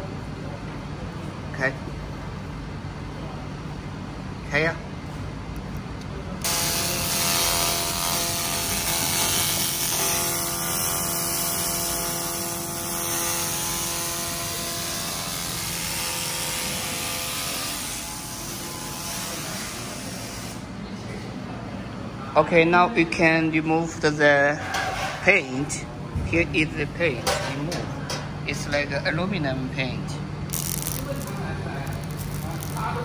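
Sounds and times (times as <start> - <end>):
laser ablating with steady hiss: 30.5 - 33.0.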